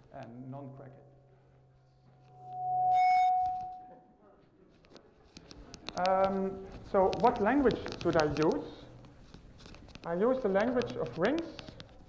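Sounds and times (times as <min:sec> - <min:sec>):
microphone feedback ringing: 0:02.1 - 0:03.9.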